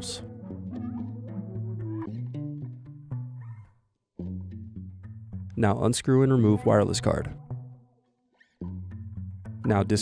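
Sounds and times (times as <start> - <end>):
background music with bass notes: 0.0 - 7.9, 8.5 - 10.0.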